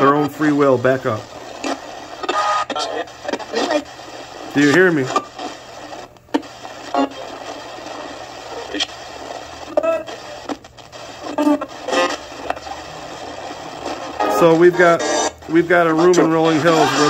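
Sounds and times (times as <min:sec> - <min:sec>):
broadcast voices and music: 0:00.0 - 0:17.0
radio static hiss: 0:00.0 - 0:17.0.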